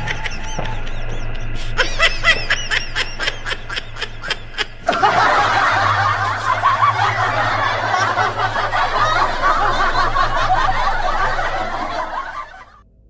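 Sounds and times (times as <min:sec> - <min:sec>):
high-pitched cackling ghost laugh: 0:00.0 - 0:12.8
many overlapping giggles: 0:00.0 - 0:12.8.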